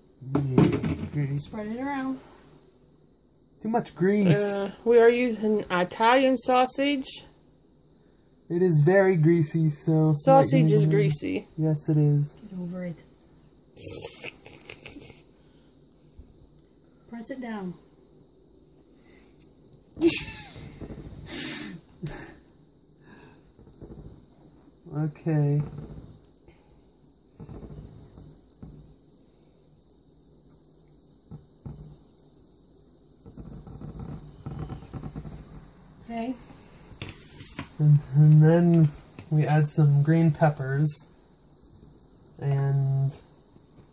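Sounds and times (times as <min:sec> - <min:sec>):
short hiss: 0:21.2 - 0:22.3, 0:36.6 - 0:37.8
sausage crackling in a skillet: 0:25.6 - 0:40.1.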